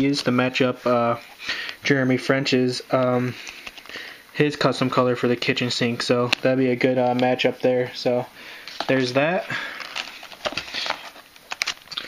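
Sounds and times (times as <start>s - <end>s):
plastic packs rustling: 6.0s - 12.0s.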